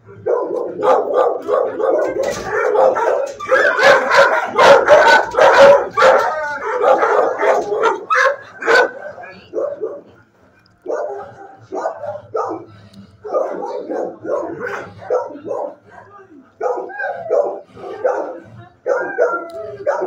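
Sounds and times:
dogs barking: 0.0s - 20.0s.

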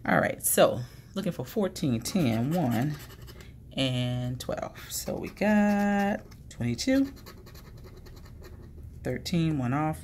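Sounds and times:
scratching lottery ticket: 2.0s - 3.4s, 4.8s - 8.9s.

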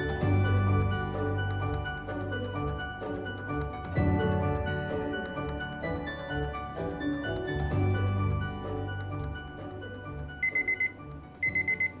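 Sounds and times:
soft background music: 0.0s - 12.0s
timer alarm beeping: 10.4s - 12.0s.

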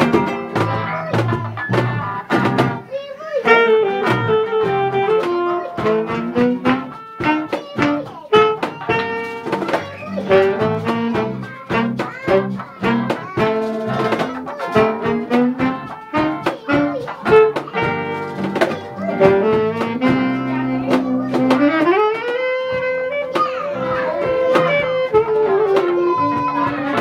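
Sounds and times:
acoustic guitars strumming: 0.0s - 27.0s
saxophone melody: 3.4s - 27.0s.

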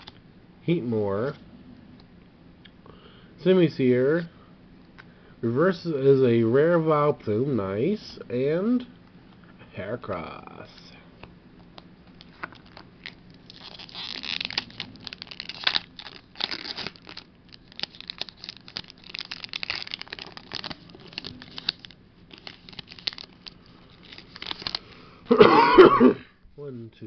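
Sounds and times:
foil wrapper crinkling and tearing: 12.2s - 25.0s.

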